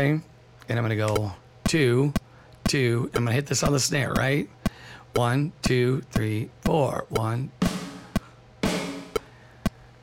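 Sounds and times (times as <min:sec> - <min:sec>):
metronome clicking: 0:01.1 - 0:07.5, 0:08.1 - 0:08.3
snare drum hit: 0:07.6 - 0:09.2.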